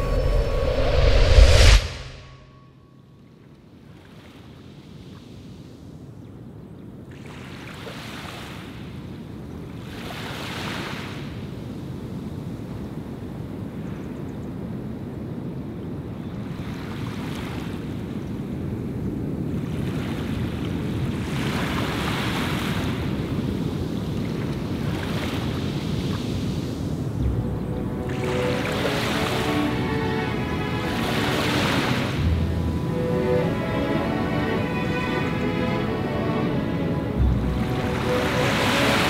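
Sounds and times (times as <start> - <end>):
waves washing on shore: 7.1 - 12.6, 16.4 - 39.0.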